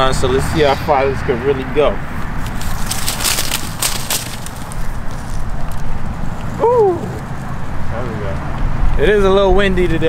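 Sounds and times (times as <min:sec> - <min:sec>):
crackling rustling noise: 0:02.1 - 0:06.6.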